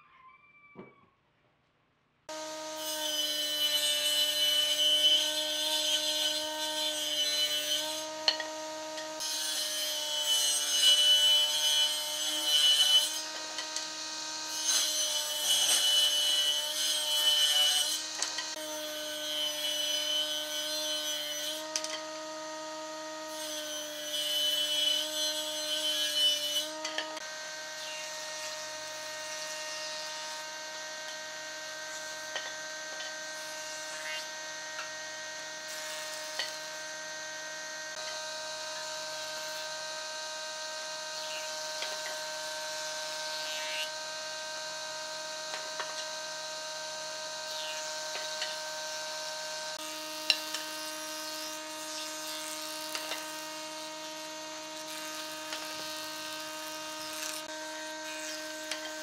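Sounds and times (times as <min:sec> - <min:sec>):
woodworking machine motor whine: 0:02.3 - 0:59.0.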